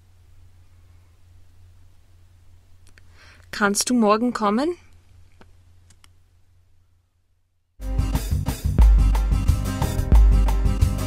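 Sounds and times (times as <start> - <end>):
low hum: 0.0 - 3.3.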